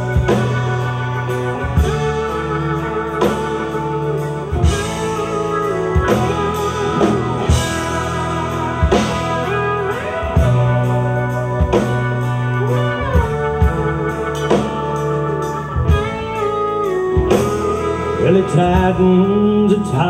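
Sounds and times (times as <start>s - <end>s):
acoustic and electric guitars: 0.0s - 20.0s
lap steel guitar sliding notes: 0.0s - 20.0s.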